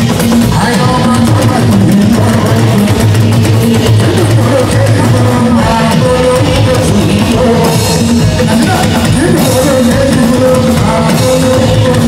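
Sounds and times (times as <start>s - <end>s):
guitar: 0.0s - 12.0s
loud bass line: 0.0s - 12.0s
percussion: 0.0s - 12.0s.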